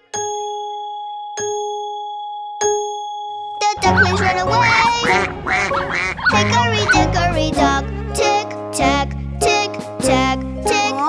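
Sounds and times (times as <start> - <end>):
nursery rhyme music with bass beat: 2.7 - 11.0
cartoon duck quacks: 3.8 - 8.2.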